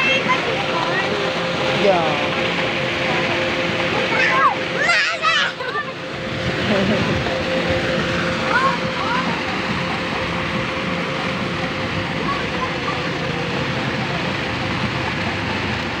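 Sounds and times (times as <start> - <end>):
constant hum: 0.0 - 16.0
distant voices: 0.0 - 16.0.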